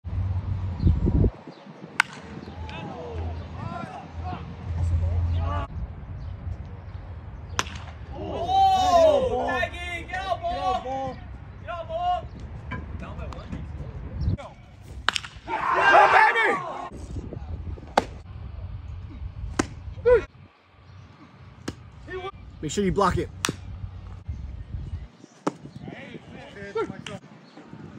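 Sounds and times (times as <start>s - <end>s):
low outdoor rumble: 0.0s - 1.3s, 2.0s - 25.2s
baseball bat hitting ball: 2.0s - 2.8s, 7.5s - 8.1s, 14.8s - 15.6s, 17.9s - 18.2s, 19.5s - 19.9s, 21.6s - 21.9s, 23.3s - 24.2s, 25.4s - 25.7s
voices calling out: 7.8s - 13.6s, 14.3s - 17.0s
low rumbling: 16.6s - 26.3s.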